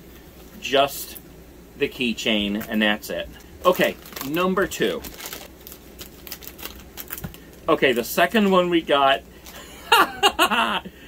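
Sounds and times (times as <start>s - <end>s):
plastic wrapper crinkling: 3.4s - 8.6s.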